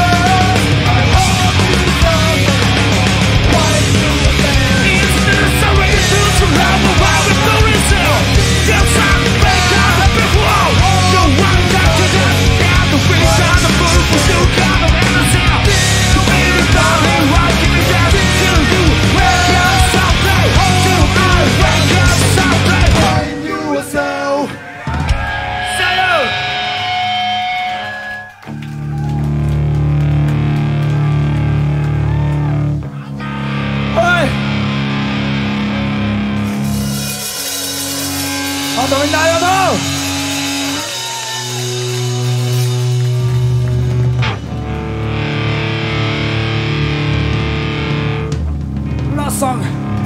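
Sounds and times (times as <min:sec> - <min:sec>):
crowd cheering and shouting: 0:00.0 - 0:47.6
electric guitars held chords: 0:00.0 - 0:50.0
punk rock band playing: 0:00.0 - 0:50.0.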